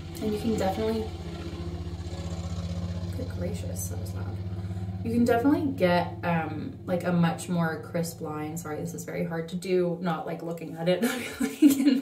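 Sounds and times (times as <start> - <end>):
motor vehicle engine running: 0.0 - 10.8.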